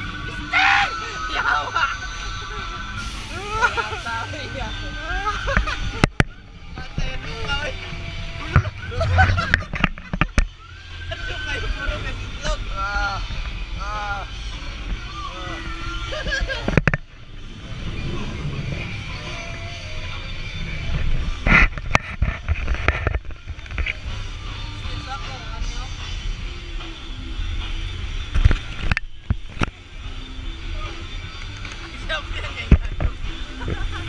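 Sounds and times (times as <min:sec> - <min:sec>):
steady low rumble: 0:00.0 - 0:34.0.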